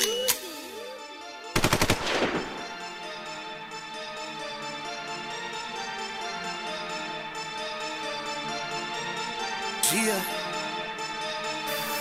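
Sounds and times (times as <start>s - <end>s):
automatic gunfire with echo: 1.6s - 2.8s.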